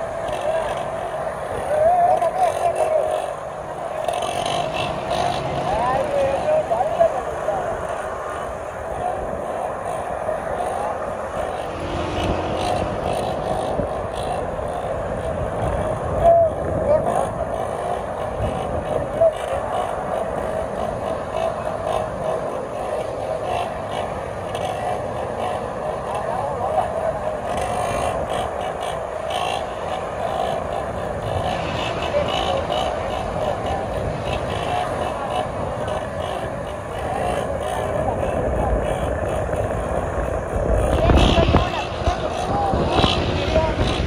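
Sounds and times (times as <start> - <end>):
small motorcycle engines: 0.0 - 44.0.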